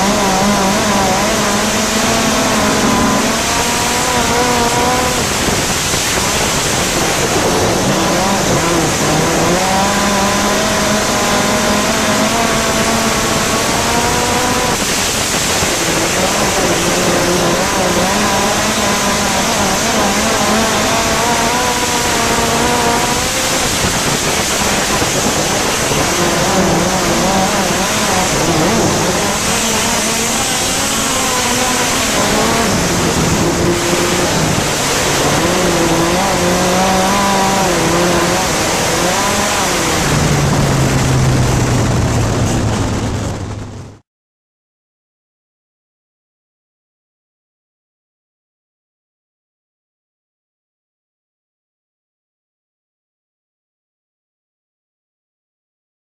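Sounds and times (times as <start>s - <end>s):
racing engine at full throttle: 0.0s - 44.0s
rushing wind: 0.0s - 44.0s
track noise: 0.0s - 44.0s.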